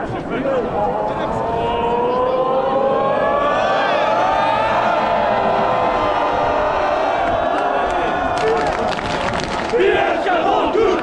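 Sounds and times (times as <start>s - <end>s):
crowd singing a chant: 9.7s - 11.0s.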